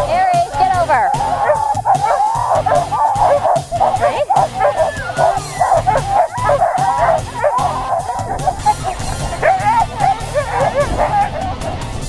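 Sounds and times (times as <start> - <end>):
sled dogs barking and howling: 0.0 - 12.0.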